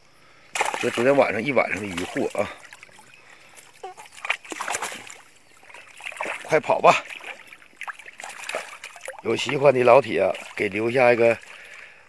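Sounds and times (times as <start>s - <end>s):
small splashes in shallow water: 0.5s - 12.0s.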